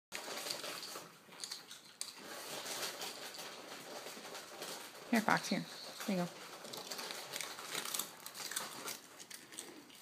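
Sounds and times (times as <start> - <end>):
dog crunching a chip: 0.1 - 10.0.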